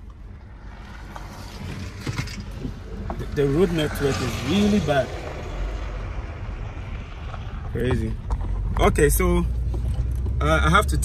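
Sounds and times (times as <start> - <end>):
car driving on dirt road: 0.0 - 11.0.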